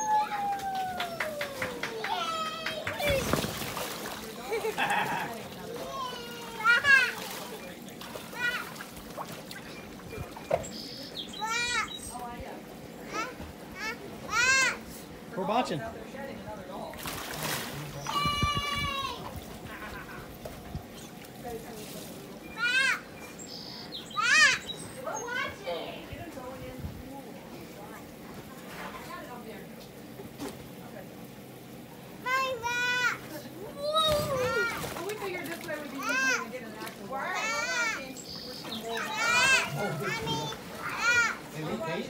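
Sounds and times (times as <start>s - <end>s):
high voice calling woo: 0.0s - 2.2s
children's high-pitched calls: 0.0s - 3.4s, 11.3s - 12.1s, 18.1s - 19.3s, 22.5s - 25.7s, 32.2s - 35.0s, 37.2s - 41.5s.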